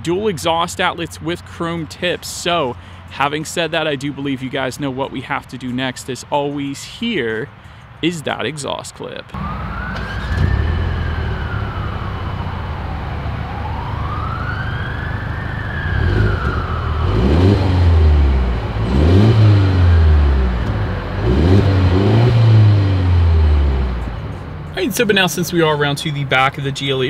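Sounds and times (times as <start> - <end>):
rising and falling wail: 9.4 - 23.0
car exhaust idling and revving: 9.4 - 27.0.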